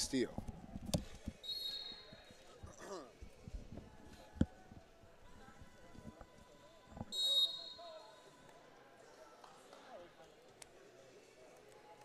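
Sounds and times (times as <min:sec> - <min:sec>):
faint voices in large hall: 0:00.0 - 0:12.0.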